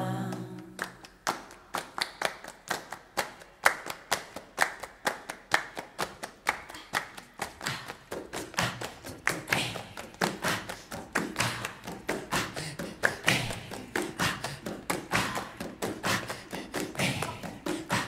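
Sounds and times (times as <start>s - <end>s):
group clapping in rhythm: 0.0s - 18.0s.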